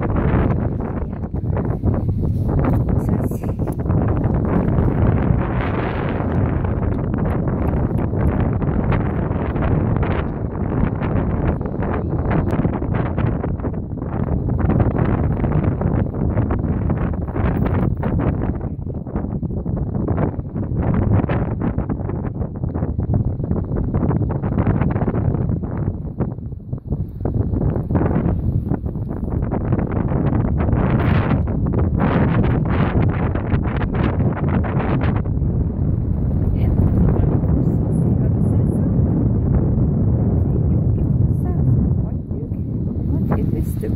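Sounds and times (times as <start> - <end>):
wind buffeting microphone: 0.0 - 43.9.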